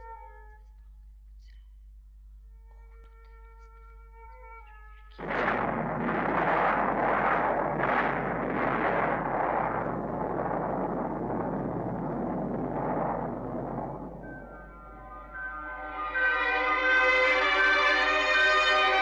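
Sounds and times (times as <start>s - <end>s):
rumbling rush of flames: 5.2s - 15.4s.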